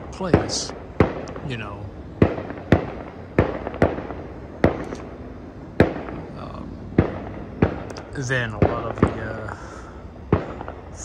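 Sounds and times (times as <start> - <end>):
fireworks bangs with echo: 0.0 - 5.1, 5.8 - 11.0.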